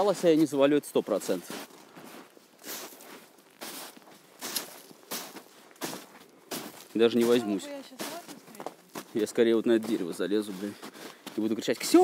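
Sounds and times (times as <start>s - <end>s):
footsteps crunching in snow: 0.0s - 12.0s.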